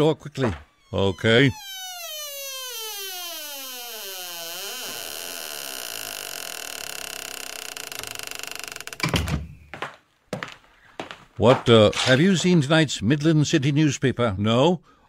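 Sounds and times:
door creaking: 0:00.4 - 0:09.8
door shutting thunk: 0:09.0 - 0:09.6.

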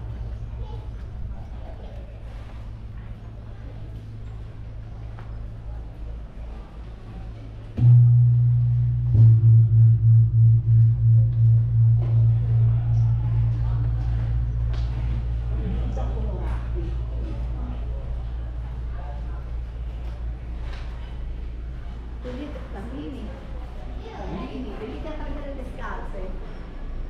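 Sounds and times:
deep gong struck: 0:07.8 - 0:17.5.

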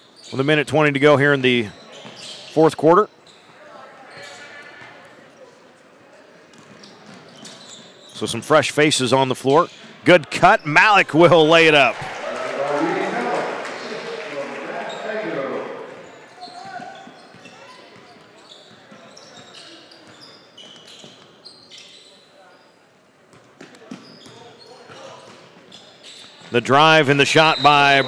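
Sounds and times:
sneakers squeaking on court: 0:00.0 - 0:00.4, 0:01.7 - 0:05.6, 0:06.4 - 0:08.4, 0:14.7 - 0:26.6
crowd cheering and chattering: 0:09.3 - 0:20.0, 0:26.6 - 0:28.0.

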